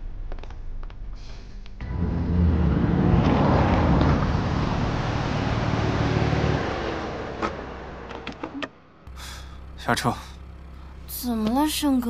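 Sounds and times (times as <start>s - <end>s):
car driving past: 1.8s - 8.5s.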